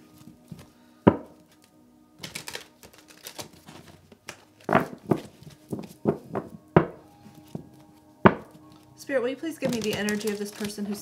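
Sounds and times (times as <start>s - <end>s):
cards being shuffled: 1.4s - 6.5s, 9.6s - 11.0s.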